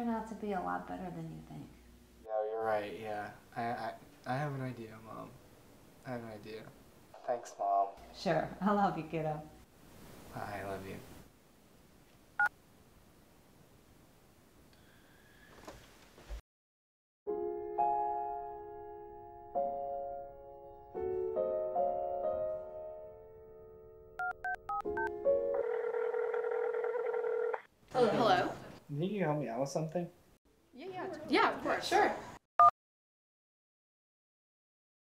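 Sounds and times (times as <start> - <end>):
phone ringing tone: 24.2 - 27.7.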